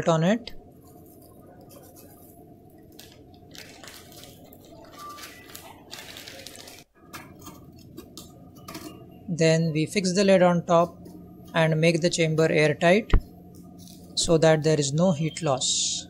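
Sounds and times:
steady low hum: 0.0 - 4.9, 6.9 - 16.0
plastic bag crinkling: 0.8 - 8.1.

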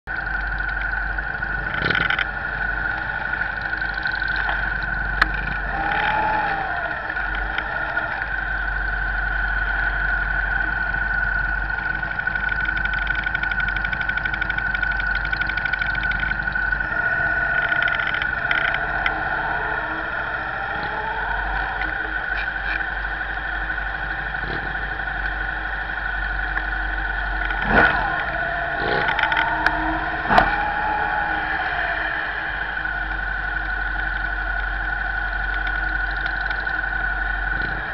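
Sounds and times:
high whine: 0.0 - 37.9
motorcycle engines running: 0.0 - 37.9
descending pitched tone: 0.1 - 37.9.

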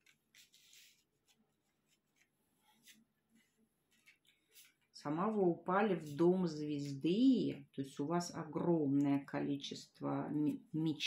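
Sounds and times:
faint rustle of playing cards: 0.0 - 5.0.

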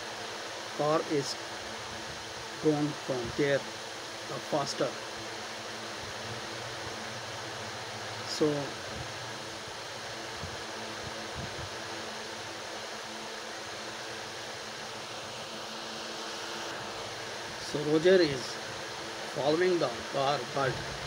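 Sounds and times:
fan hum and hiss: 0.0 - 21.0.

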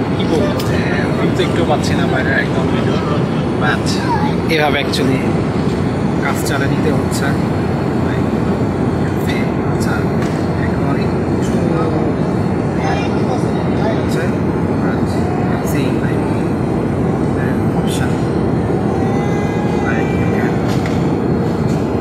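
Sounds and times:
airliner cabin engine rumble: 0.0 - 22.0.

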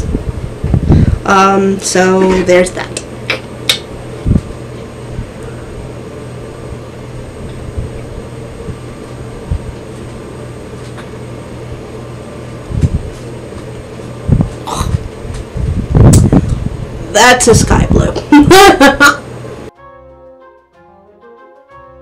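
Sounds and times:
low mechanical hum: 0.0 - 19.7.

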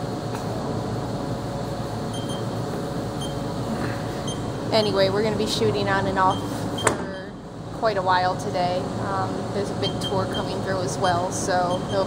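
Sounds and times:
machine-shop hum: 0.0 - 12.0.

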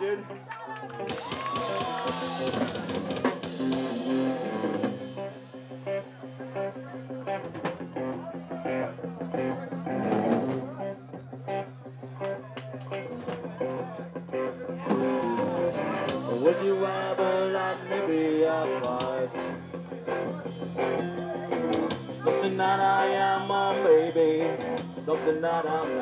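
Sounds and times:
ska punk band playing: 0.9 - 26.0.

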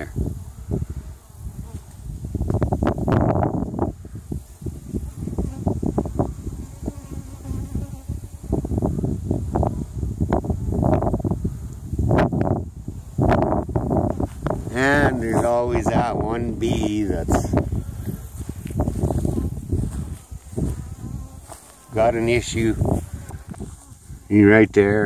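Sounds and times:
bees buzzing: 0.0 - 12.6, 13.2 - 24.9.

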